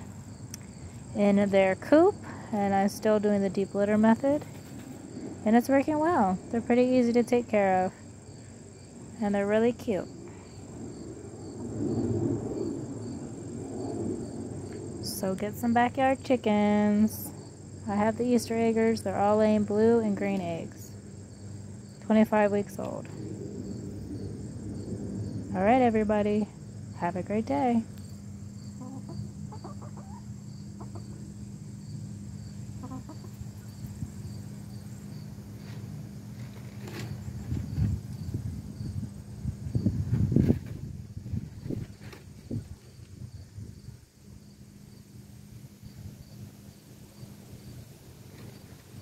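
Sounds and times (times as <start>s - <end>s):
cricket chirping: 0.0s - 2.9s, 3.5s - 49.0s
insects trilling: 0.0s - 49.0s
steady low hum: 0.0s - 49.0s
hens clucking softly: 28.8s - 31.2s, 32.8s - 33.4s
low rustling noise: 35.3s - 43.8s.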